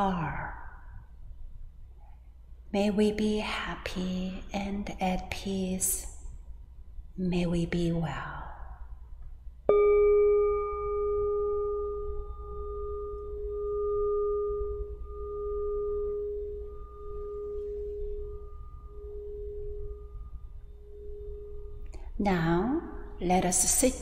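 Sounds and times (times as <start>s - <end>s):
singing bowl ringing: 9.7s - 23.8s.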